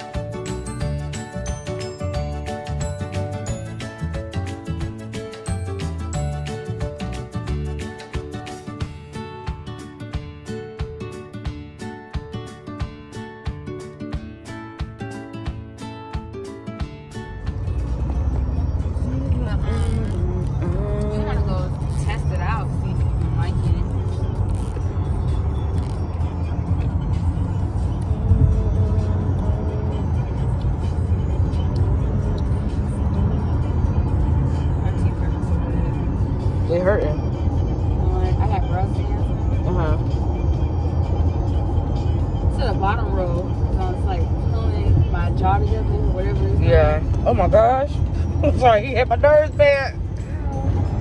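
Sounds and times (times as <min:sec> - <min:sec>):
music: 0:00.0 - 0:51.0
car cabin rumble: 0:17.3 - 0:51.0.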